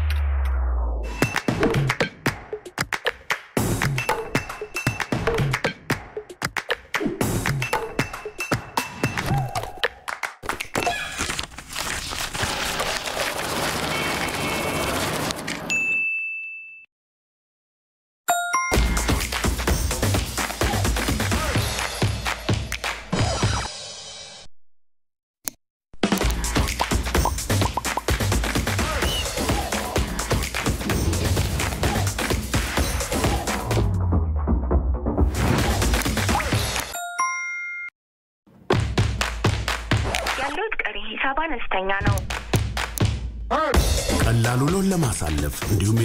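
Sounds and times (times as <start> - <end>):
high bell-like ding: 15.7 - 16.9, 18.3 - 19.2, 37.0 - 37.9
two-note phone notification ding: 18.3 - 19.2.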